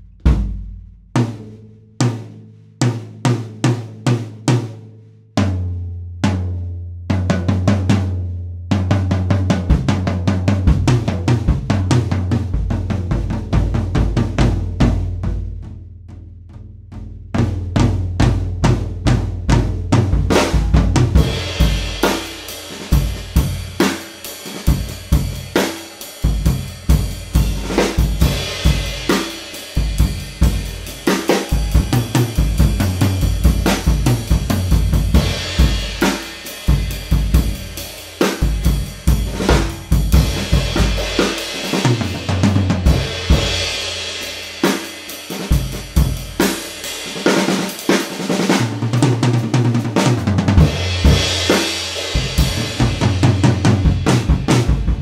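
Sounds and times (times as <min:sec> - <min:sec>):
bass drum: 0:00.0 - 0:02.2, 0:05.4 - 0:24.0, 0:24.6 - 0:44.7, 0:45.4 - 0:46.8, 0:48.6 - 0:55.0
snare drum: 0:19.7 - 0:55.0
hi-hat and ride cymbals: 0:20.3 - 0:48.6, 0:50.6 - 0:55.0.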